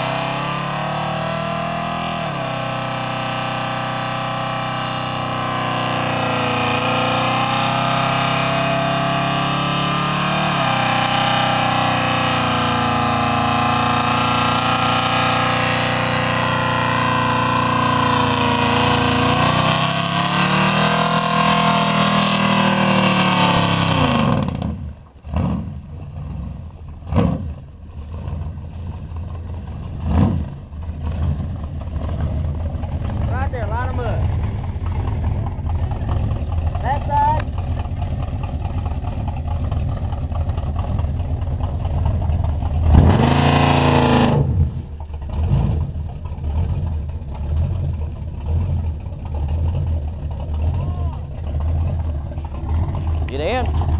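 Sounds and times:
engine revving high: 0.0s - 26.4s, 30.0s - 32.3s, 33.0s - 36.2s, 42.8s - 45.9s
engine throttle blips: 0.0s - 53.9s
tyres spinning: 44.9s - 53.9s.

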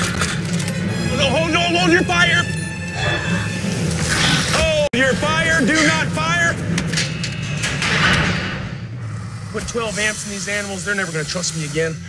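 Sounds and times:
metal gate clanking: 5.4s - 8.9s.

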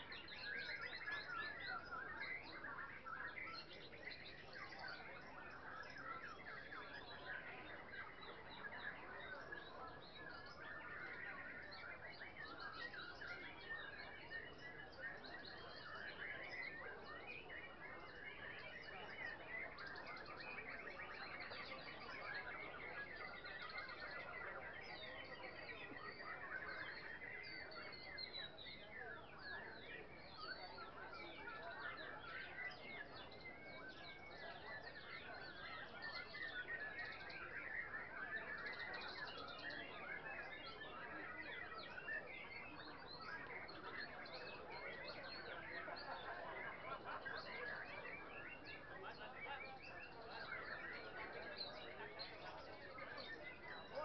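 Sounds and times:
songbirds chirping and trilling: 0.0s - 54.0s.

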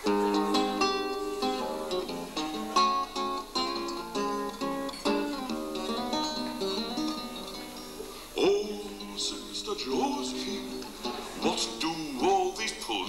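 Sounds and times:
classical guitar played solo: 0.0s - 13.0s.

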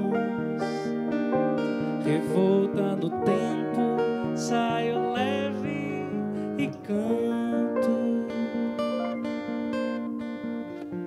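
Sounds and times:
acoustic guitar: 0.0s - 11.0s
grand piano: 0.0s - 11.0s.

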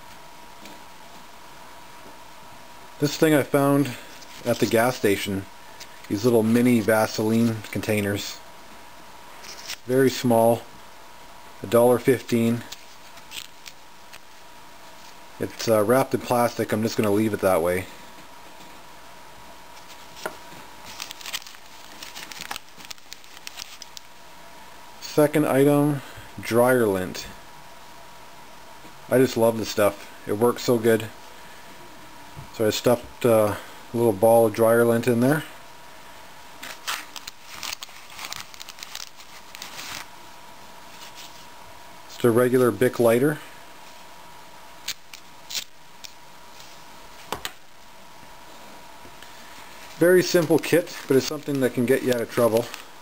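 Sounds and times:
plastic bag crinkling: 12.6s - 14.3s, 20.8s - 24.1s, 36.6s - 40.1s, 49.7s - 52.9s.

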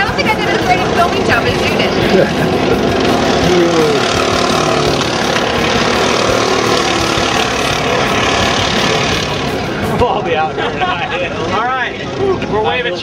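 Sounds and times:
go-kart engines racing: 0.0s - 13.0s.

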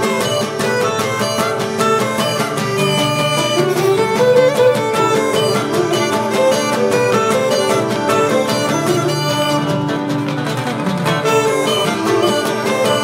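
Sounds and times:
bowed lyra: 0.0s - 13.0s
plucked guitar strings: 0.0s - 13.0s
wind pipe melody: 0.0s - 13.0s.

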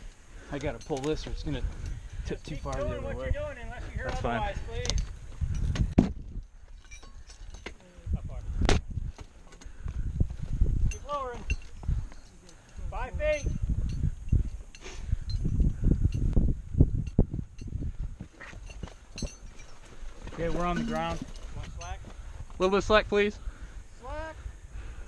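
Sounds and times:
metal hardware clink: 6.8s - 7.8s, 18.6s - 19.8s.

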